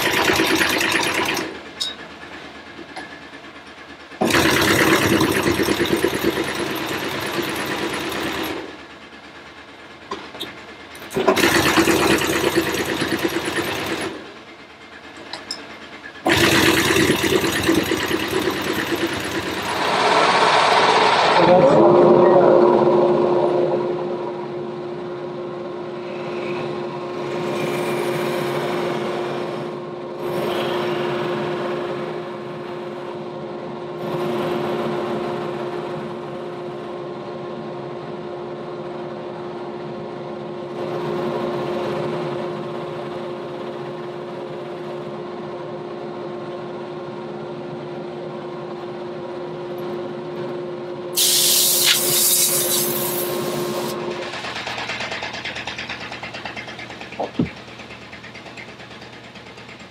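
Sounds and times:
sewing machine stitching: 0:00.0 - 0:01.6, 0:04.2 - 0:08.8, 0:10.5 - 0:14.3, 0:16.3 - 0:20.6
wheel working a floor mat: 0:16.1 - 0:21.6, 0:51.2 - 0:59.9.

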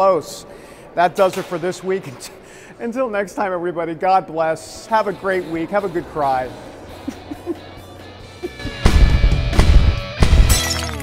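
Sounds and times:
closing theme music: 0:04.9 - 0:11.0
heavy drum hits: 0:08.7 - 0:10.5.

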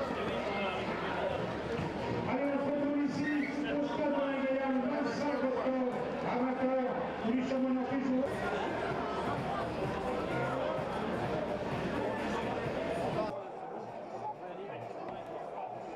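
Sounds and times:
stadium crowd noise: 0:00.0 - 0:15.9.

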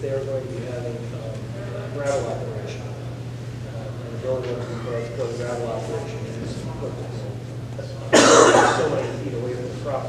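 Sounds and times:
person coughing: 0:08.1 - 0:09.2.

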